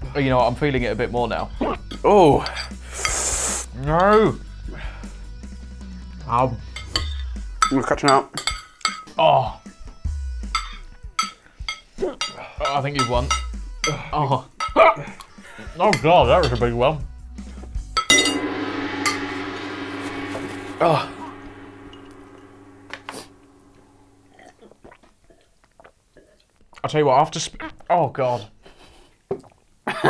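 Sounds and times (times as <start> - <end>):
forks clinking on china plates: 6.8 - 9.1, 10.6 - 14.0
low rumble: 18.1 - 24.5
short sharp sounds: 18.3 - 24.4.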